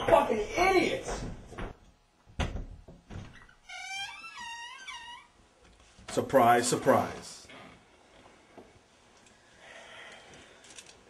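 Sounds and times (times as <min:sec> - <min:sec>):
door thudding shut: 0:02.4 - 0:03.4.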